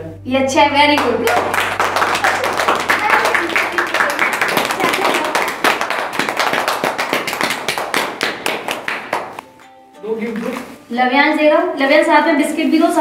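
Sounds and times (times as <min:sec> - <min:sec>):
children clapping: 0:01.0 - 0:09.4.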